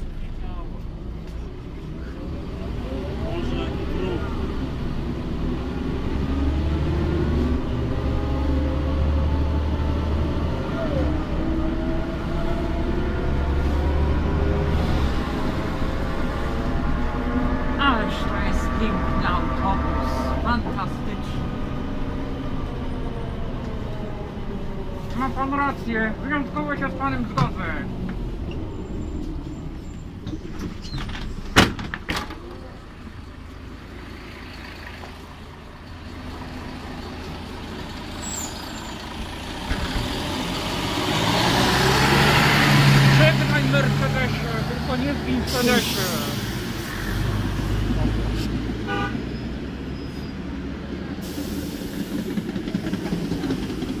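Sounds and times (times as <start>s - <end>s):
diesel bus driving past: 0.0s - 31.6s, 32.2s - 54.0s
air hiss: 51.2s - 52.4s.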